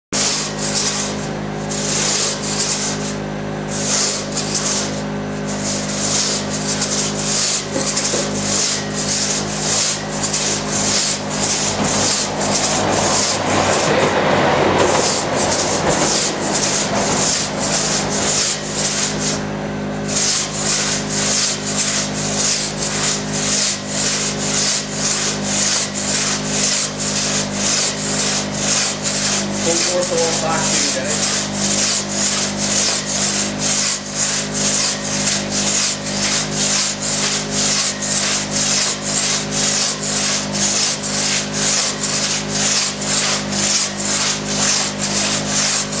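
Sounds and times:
crosscut saw rasping through log: 0.2s - 46.0s.

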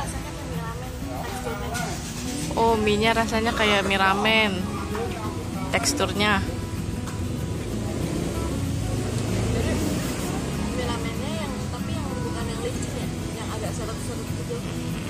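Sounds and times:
faint background voices: 0.0s - 15.0s
street traffic rumble: 0.0s - 15.0s
vehicle passing: 4.8s - 15.0s.

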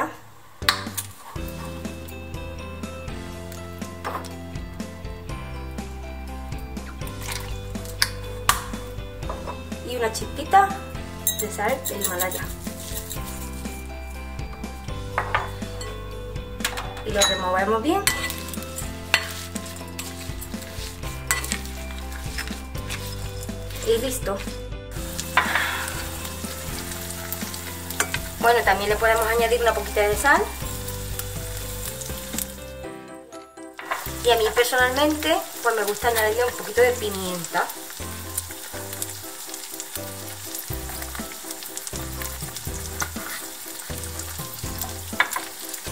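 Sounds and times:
background music with held notes: 0.6s - 45.9s
salad leaves rustling: 11.8s - 13.9s, 18.2s - 32.7s.

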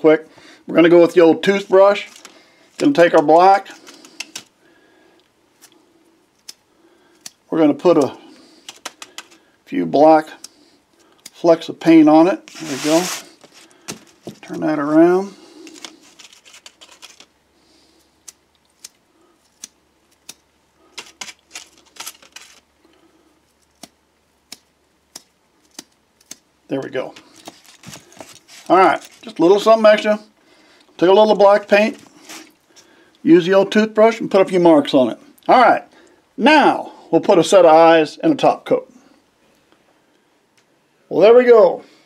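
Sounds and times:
faint steady hum: 0.0s - 42.0s.

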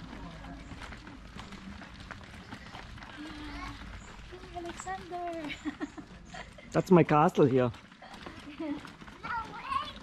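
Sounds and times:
child's voice: 3.2s - 5.5s, 9.2s - 10.0s.

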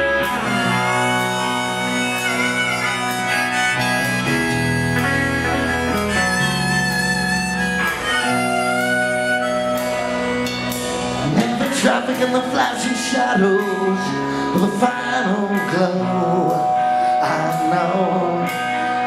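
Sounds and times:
rock band playing: 0.0s - 19.0s.

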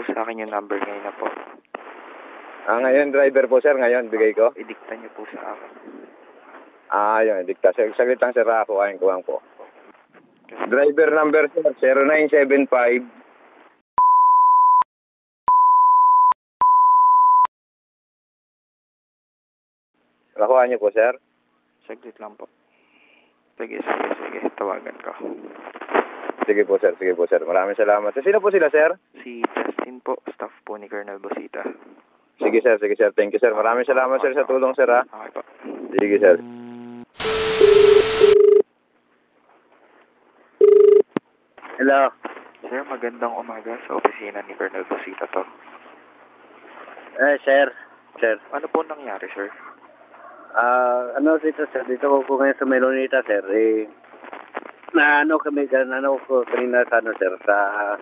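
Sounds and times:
high censor bleeps: 15.5s - 17.5s, 36.4s - 38.6s
faint phone line noise: 36.3s - 38.6s, 40.6s - 41.1s
telephone ringback tone: 36.5s - 38.6s, 40.6s - 41.0s.

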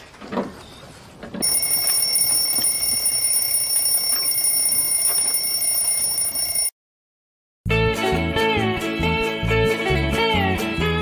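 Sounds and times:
alarm clock ringing: 1.4s - 6.7s.

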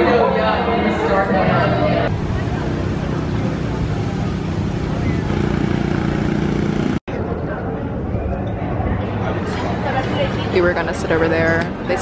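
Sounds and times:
steady rush of noise: 0.5s - 12.0s.

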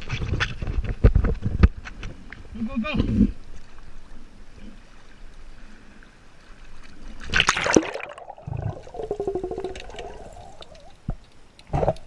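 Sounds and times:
underwater bubbling gurgle: 6.7s - 12.0s
camera splashing into water: 7.3s - 8.9s.

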